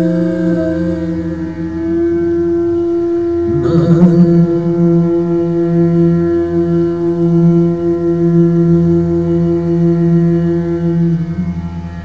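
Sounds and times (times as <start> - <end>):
man singing a held note: 0.0 - 2.0, 3.5 - 11.5.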